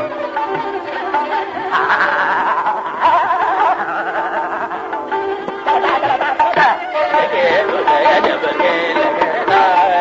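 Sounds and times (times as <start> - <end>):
instrumental accompaniment: 0.0 - 10.0
men singing classical vocal runs: 5.7 - 10.0.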